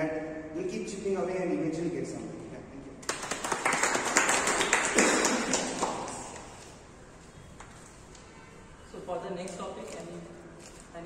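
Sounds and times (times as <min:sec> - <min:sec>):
group of people clapping: 0:03.0 - 0:06.8.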